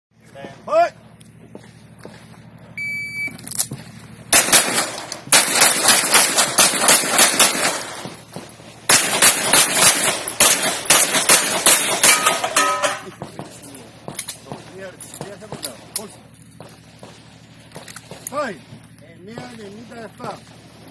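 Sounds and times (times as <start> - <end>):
shot timer beep: 2.8 - 3.4
rapid pistol shots: 4.3 - 12.5.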